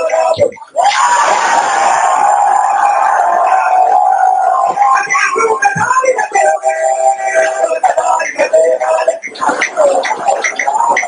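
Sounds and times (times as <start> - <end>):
loud crowd noise: 0.0 - 11.0.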